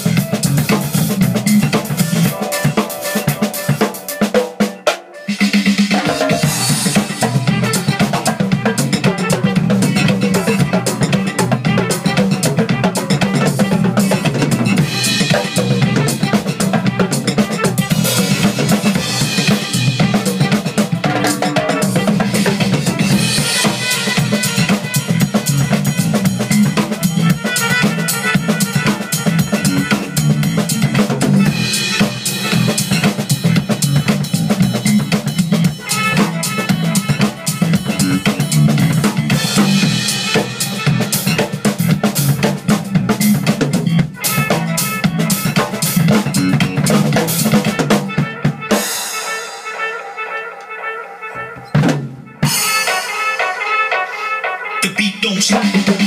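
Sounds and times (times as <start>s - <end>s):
drum kit funk groove: 0.0s - 56.0s
funk backing track: 0.0s - 56.0s.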